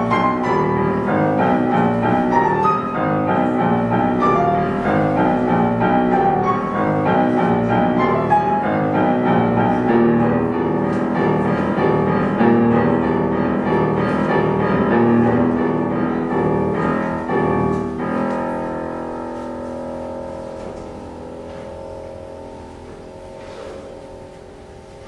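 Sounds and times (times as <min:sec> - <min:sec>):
grand piano chords: 0:00.0 - 0:25.0.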